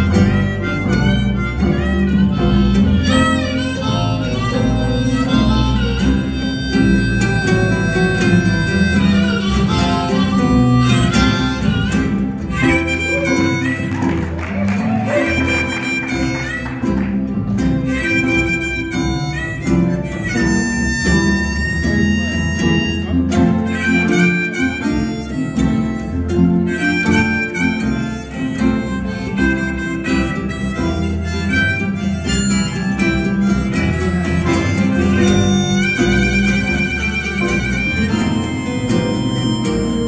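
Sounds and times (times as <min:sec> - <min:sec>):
bass: 0:00.0 - 0:40.0
harmonica lead: 0:00.0 - 0:40.0
strummed ukuleles: 0:00.0 - 0:40.0.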